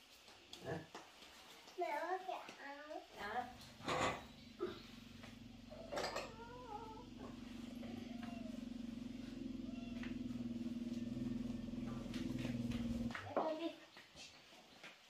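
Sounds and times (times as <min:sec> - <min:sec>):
low droning hum: 0:03.2 - 0:13.2
cat meowing: 0:03.6 - 0:13.1.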